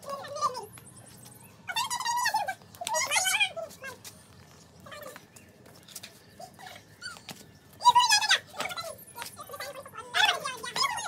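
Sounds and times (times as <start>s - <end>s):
children's voices: 7.8s - 11.0s.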